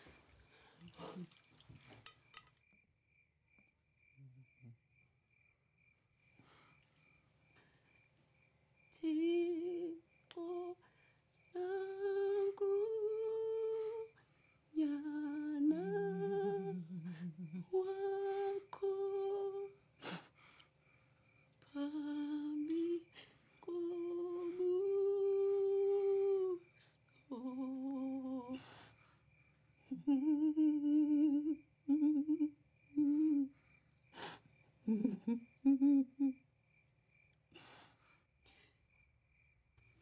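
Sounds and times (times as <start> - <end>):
woman humming a slow tune: 8.9 - 10.8, 11.6 - 14.2, 14.8 - 19.8, 21.6 - 28.7, 29.8 - 33.6, 34.8 - 36.5.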